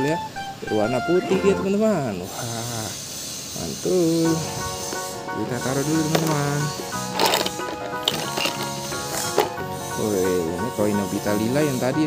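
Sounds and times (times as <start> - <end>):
background music sustained notes: 4.3 - 12.0.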